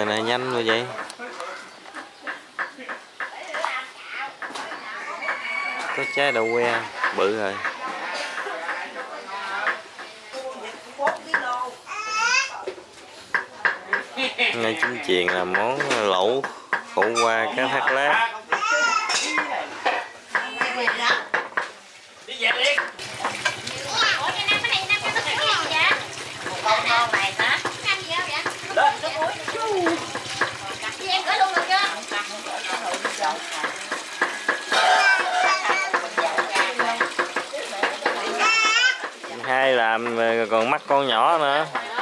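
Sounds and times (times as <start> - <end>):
people talking: 22.6 - 34.0.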